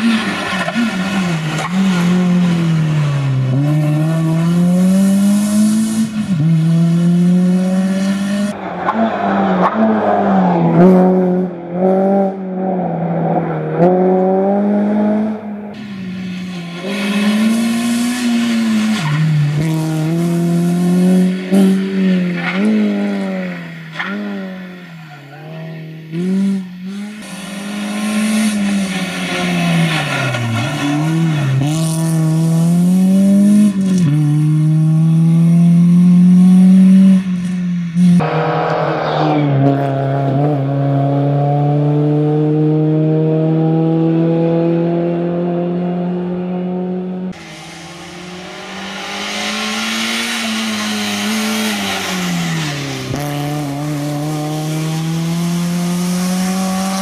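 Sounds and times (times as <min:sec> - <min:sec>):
rally car engine revving: 0:00.0 - 0:57.0.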